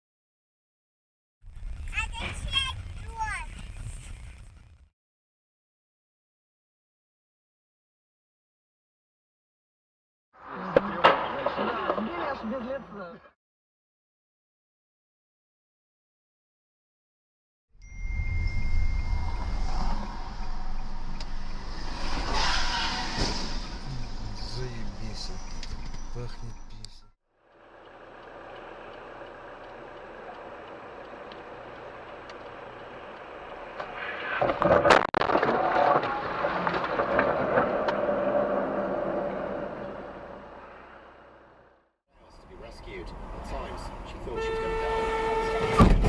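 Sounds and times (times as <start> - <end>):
engine and road rumble: 1.4 - 4.9, 18.0 - 46.0
loud car impact: 45.6 - 46.0.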